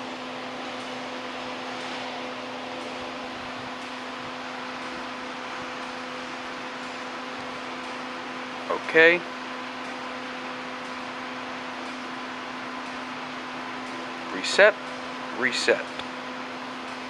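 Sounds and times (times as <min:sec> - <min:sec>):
fan whirring: 0:00.0 - 0:17.0
low humming tone: 0:00.0 - 0:17.0.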